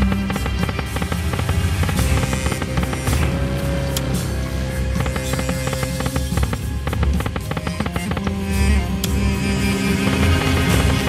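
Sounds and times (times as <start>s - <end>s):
electronic game music: 0.0s - 11.0s.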